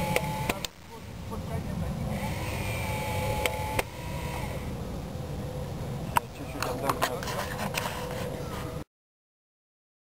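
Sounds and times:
small electric motor whining: 0:00.0 - 0:00.7, 0:02.0 - 0:04.8
steady low rumble: 0:00.0 - 0:08.8.

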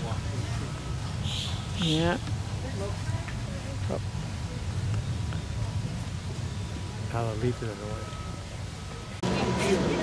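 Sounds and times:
distant voices murmuring: 0:00.0 - 0:10.0.

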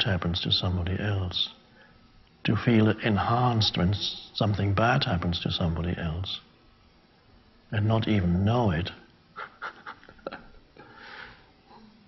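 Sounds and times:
man chuckling softly: 0:09.3 - 0:10.7.

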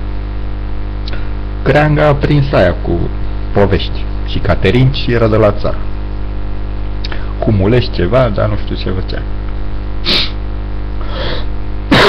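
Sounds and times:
low electrical hum: 0:00.0 - 0:12.0
sharp breath: 0:11.0 - 0:11.5.

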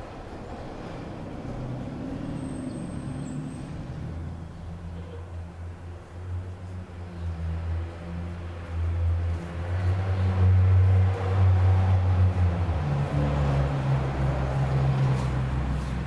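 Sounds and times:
vehicle engine rumbling: 0:00.0 - 0:16.0.

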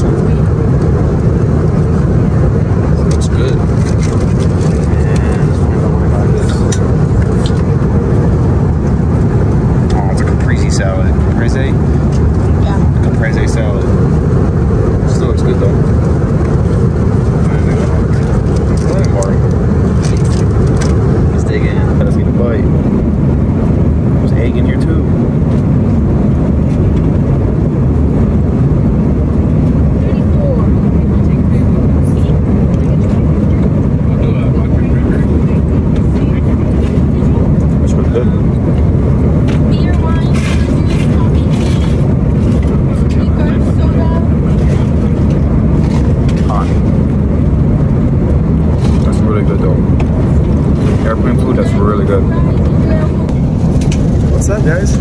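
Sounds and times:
airplane cabin rumble: 0:00.0 - 0:55.0.

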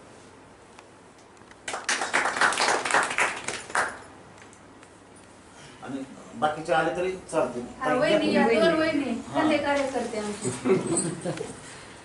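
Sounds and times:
people clapping: 0:01.6 - 0:04.6.

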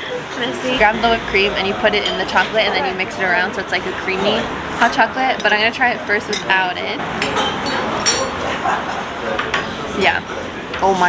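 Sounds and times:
background chatter: 0:00.0 - 0:11.0
spoon clinking against cup: 0:07.2 - 0:08.4.

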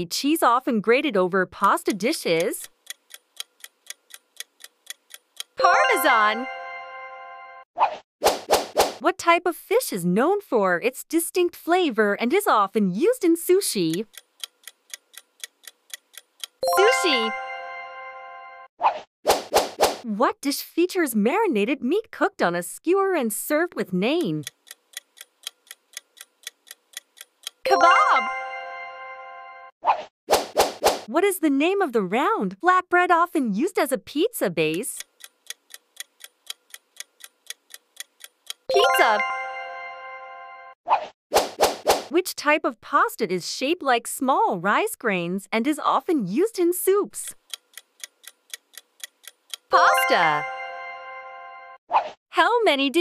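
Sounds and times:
clock ticking: 0:01.6 - 0:06.3, 0:13.6 - 0:17.3, 0:24.0 - 0:27.8, 0:34.6 - 0:39.2, 0:47.3 - 0:50.4
chiming sound effect: 0:05.6 - 0:07.6, 0:16.6 - 0:18.7, 0:27.7 - 0:29.7, 0:38.7 - 0:40.8, 0:49.7 - 0:51.8.

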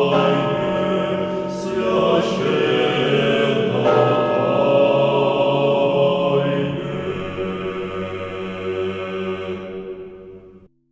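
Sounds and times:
choral chant: 0:00.0 - 0:10.7.

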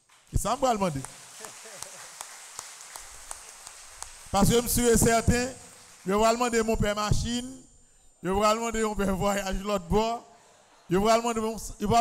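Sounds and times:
scattered hand claps: 0:00.0 - 0:06.7
faint room noise hiss: 0:00.1 - 0:12.0.

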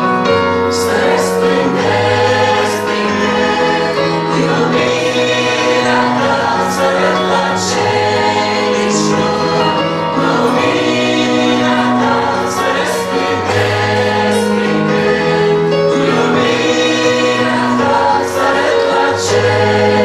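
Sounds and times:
choir singing a hymn: 0:00.0 - 0:20.0.

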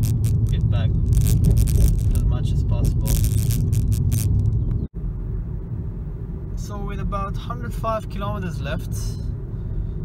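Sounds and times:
car road rumble inside cabin: 0:00.0 - 0:10.0.

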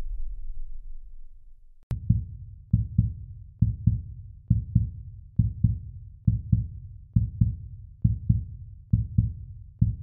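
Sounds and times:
heartbeat thumps: 0:01.9 - 0:10.0.

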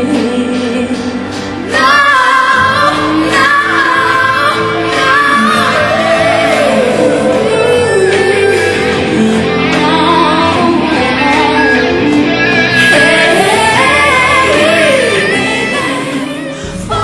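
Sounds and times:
band accompaniment: 0:00.0 - 0:17.0
woman singing: 0:00.0 - 0:17.0.

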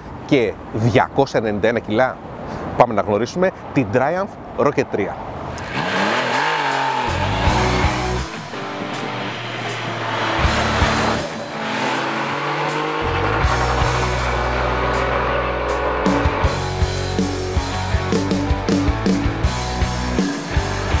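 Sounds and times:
motorcycle engine revving by: 0:05.6 - 0:16.7
background music: 0:05.6 - 0:21.0.

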